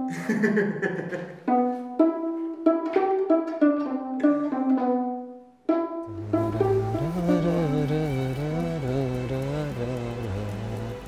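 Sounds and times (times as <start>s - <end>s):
plucked strings melody: 1.3s - 11.0s.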